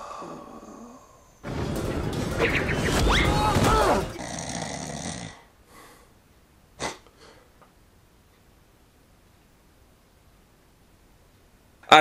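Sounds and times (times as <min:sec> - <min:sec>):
man snoring: 0:00.0 - 0:01.3, 0:04.2 - 0:05.5
faint breath: 0:00.0 - 0:01.4, 0:05.6 - 0:06.2.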